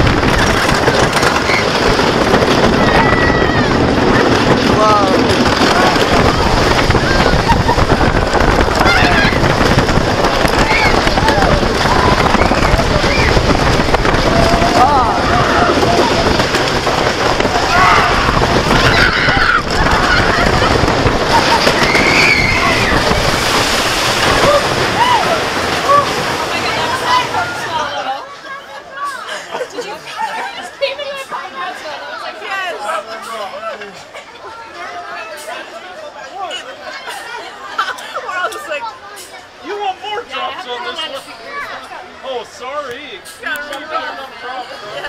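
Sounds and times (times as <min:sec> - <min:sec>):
roller coaster rumbling clatter: 0:00.0 - 0:28.0
people chattering: 0:00.0 - 0:45.0.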